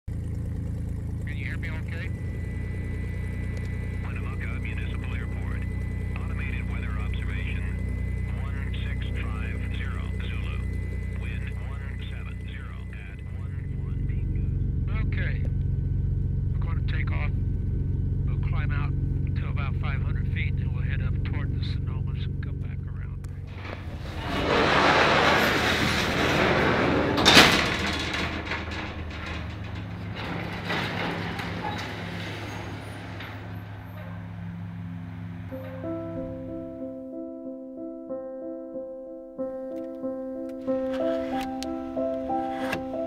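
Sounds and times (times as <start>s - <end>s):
steady low drone: 0.1s - 43.0s
indistinct voices: 3.9s - 15.6s, 18.2s - 34.5s
metal door clang: 23.4s - 36.8s
metal door rolling open: 23.4s - 36.9s, 40.6s - 43.0s
soft piano music: 35.4s - 43.0s.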